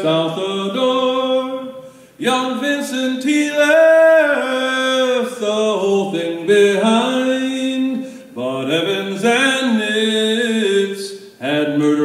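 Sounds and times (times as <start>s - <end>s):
man singing folk ballad: 0.0s - 12.0s.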